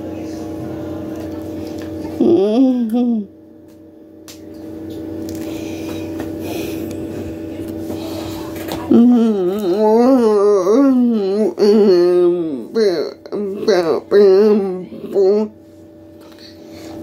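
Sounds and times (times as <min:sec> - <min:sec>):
low steady hum: 0:00.0 - 0:17.0
person wailing: 0:02.2 - 0:03.3, 0:08.9 - 0:15.6.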